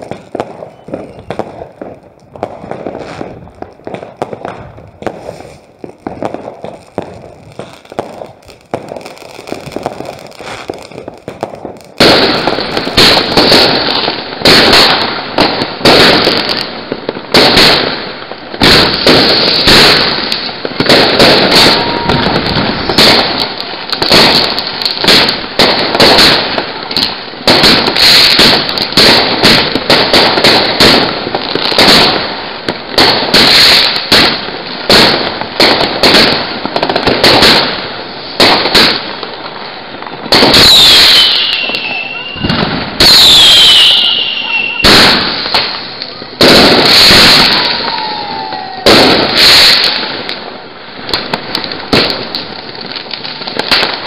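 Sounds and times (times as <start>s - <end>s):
fireworks bangs and crackles: 0.0s - 54.0s
falling firework whistles: 0.1s - 1.6s, 4.4s - 11.2s, 18.6s - 24.4s, 38.3s - 50.0s.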